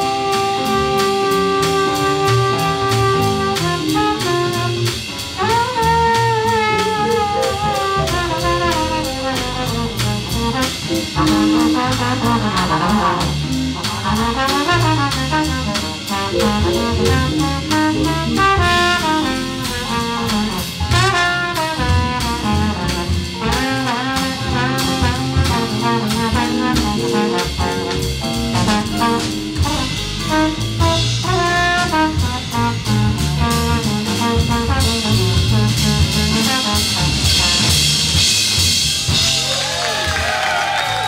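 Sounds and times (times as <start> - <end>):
trombone playing melody: 0.0 - 39.4
drum kit with cymbals: 0.0 - 41.0
walking double bass: 0.0 - 41.0.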